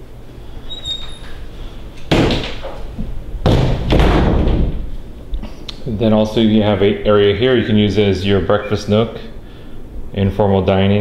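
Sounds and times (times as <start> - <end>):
door closing thuds: 2.1 - 2.8, 3.4 - 4.9.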